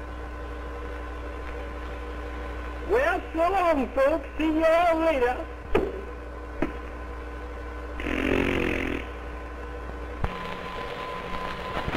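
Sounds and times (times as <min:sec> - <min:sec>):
buzzing rasping cartoon sound effect: 0:08.0 - 0:09.2.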